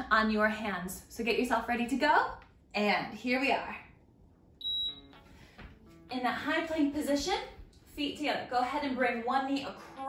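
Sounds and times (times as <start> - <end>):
short high electronic beep: 4.6 - 5.0.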